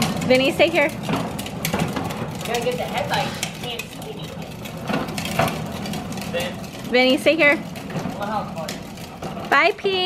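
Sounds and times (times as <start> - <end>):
toy car wheels rolling on concrete: 0.0 - 10.0.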